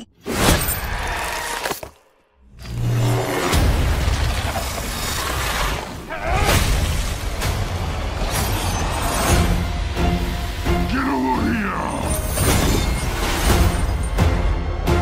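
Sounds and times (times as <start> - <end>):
trailer music score: 0.0 - 15.0.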